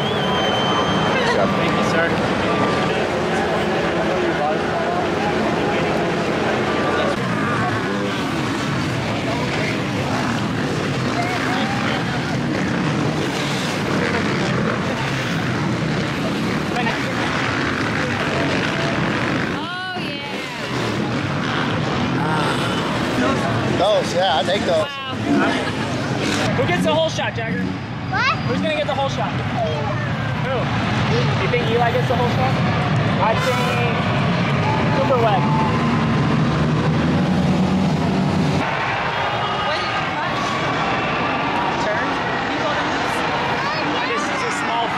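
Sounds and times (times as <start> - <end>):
indistinct voices: 0.0 - 44.9
motorcycle engines droning: 0.0 - 44.9
stadium crowd noise: 0.0 - 44.9.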